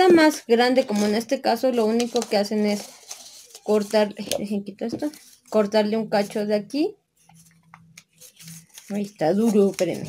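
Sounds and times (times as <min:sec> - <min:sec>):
paper crinkling and tearing: 0:00.8 - 0:04.2, 0:07.3 - 0:10.0.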